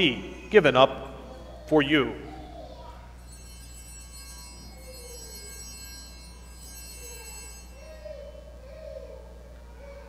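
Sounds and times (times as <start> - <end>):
steady low hum: 0.0 - 10.0
altar bells ringing: 2.2 - 9.4.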